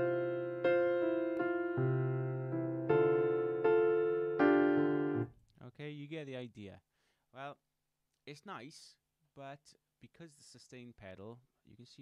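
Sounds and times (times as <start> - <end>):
piano chords ringing together: 0.0 - 5.3
man talking: 5.6 - 7.6, 8.3 - 12.0.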